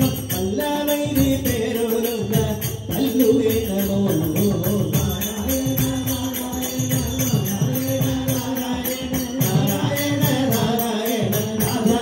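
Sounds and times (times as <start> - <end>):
jingling hand percussion: 0.0 - 12.0
tabla drumming: 0.0 - 12.0
voices singing together: 0.0 - 12.0.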